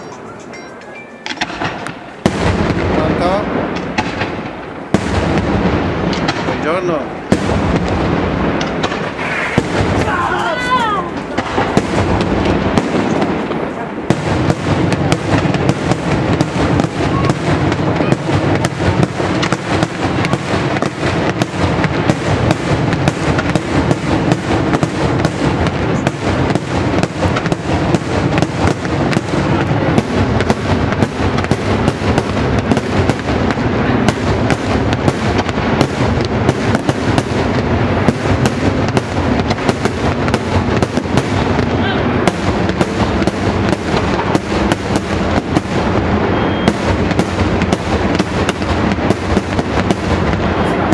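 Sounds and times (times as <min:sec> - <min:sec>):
fireworks bursting: 0:00.0 - 0:50.9.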